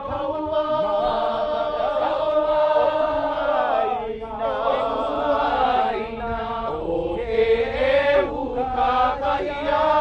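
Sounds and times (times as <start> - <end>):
many voices chanting: 0.0 - 10.0.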